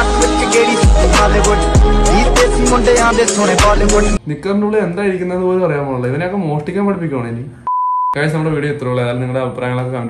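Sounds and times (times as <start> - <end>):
censor bleep tone: 7.7 - 8.2.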